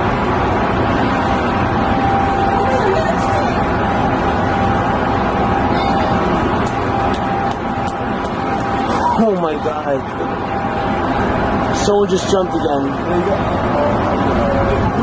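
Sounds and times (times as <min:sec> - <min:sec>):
traffic rumble: 0:00.0 - 0:15.0.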